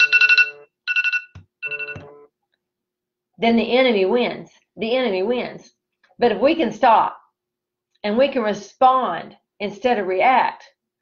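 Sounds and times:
phone ringtone trilling: 0:00.0 - 0:02.3.

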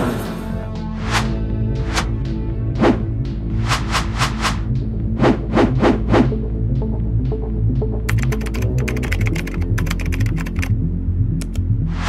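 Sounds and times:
background music: 0:00.0 - 0:12.0
keyboard key clicks: 0:08.1 - 0:10.7, 0:11.4 - 0:11.6.

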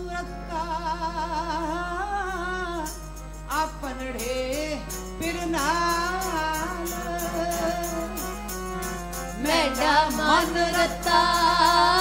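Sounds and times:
harmonium tone: 0:00.0 - 0:12.0
woman singing devotional song: 0:09.2 - 0:12.0.

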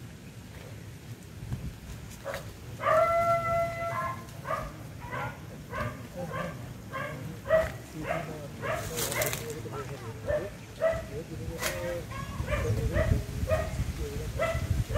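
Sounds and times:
rustling: 0:00.5 - 0:10.3
dog barking: 0:02.2 - 0:11.2, 0:12.1 - 0:13.8, 0:14.4 - 0:14.9.

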